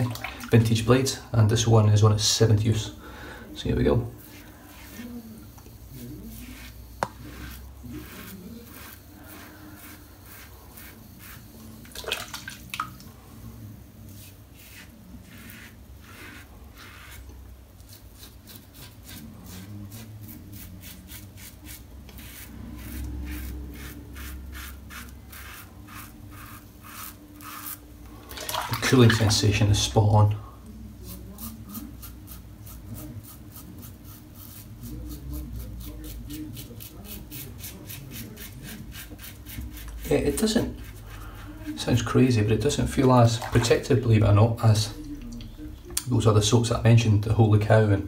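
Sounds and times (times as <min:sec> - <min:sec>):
safety razor scraping stubble: 0:17.8 - 0:27.8.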